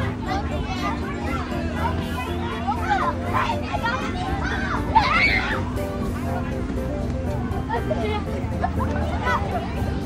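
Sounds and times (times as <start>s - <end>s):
background music: 0.0s - 10.0s
children talking and calling out: 0.0s - 10.0s.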